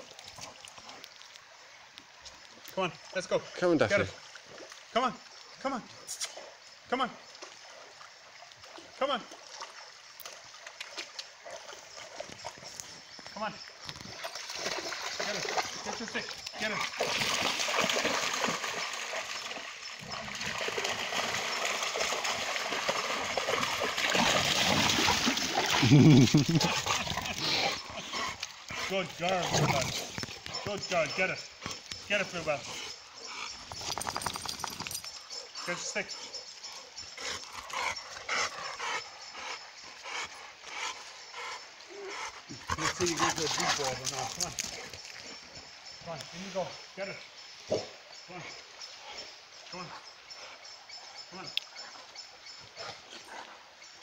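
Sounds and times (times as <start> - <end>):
shallow river water running: 0.0 - 54.0
dog wading and splashing: 8.6 - 13.1, 14.0 - 35.6.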